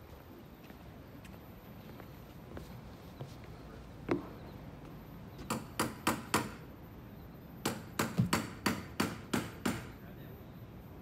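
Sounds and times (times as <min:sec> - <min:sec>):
sharp knocks: 0:05.5 - 0:06.6, 0:07.6 - 0:09.9.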